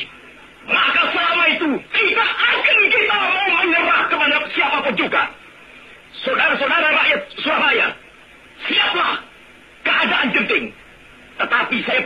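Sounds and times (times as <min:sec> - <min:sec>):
man declaiming on old recording: 0:00.0 - 0:12.0.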